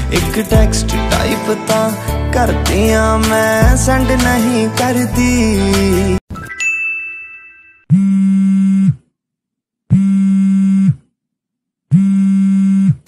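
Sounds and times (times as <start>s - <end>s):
high ringing tone: 6.4s - 7.9s.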